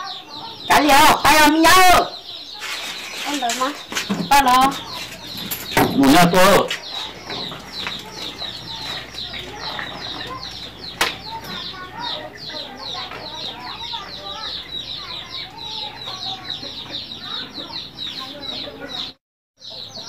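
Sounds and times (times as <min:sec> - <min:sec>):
chickens clucking: 0:00.0 - 0:20.0
chicks peeping: 0:00.0 - 0:20.0.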